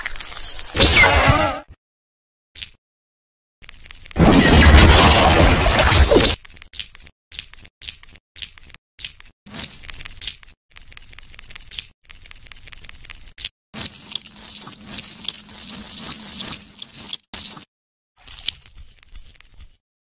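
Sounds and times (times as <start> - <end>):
wet crackling and rustling: 6.4 - 17.6, 18.2 - 19.8.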